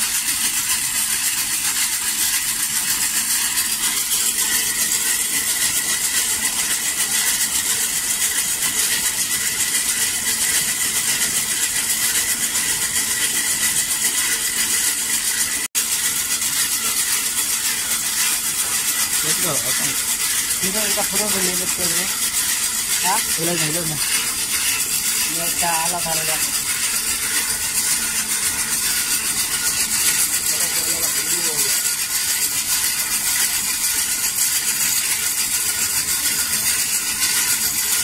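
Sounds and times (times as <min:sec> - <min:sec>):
hand-cranked blower whirring: 0:00.0 - 0:38.0.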